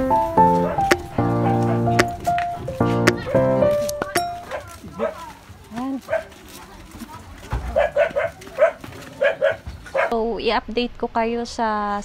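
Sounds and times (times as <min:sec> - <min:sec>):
dog barking: 0:00.5 - 0:02.2, 0:02.9 - 0:03.7, 0:04.4 - 0:05.3, 0:06.0 - 0:06.3, 0:07.6 - 0:10.2.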